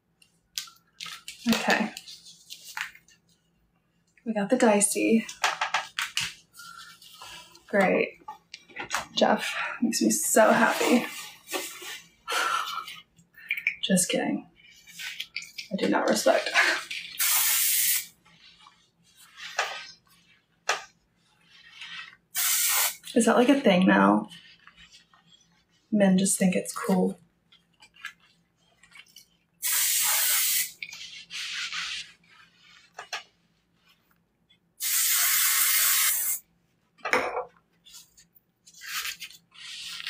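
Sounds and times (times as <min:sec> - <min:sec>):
aerosol can spraying: 0:17.2 - 0:18.1, 0:22.4 - 0:23.1, 0:29.6 - 0:30.8, 0:34.8 - 0:36.4.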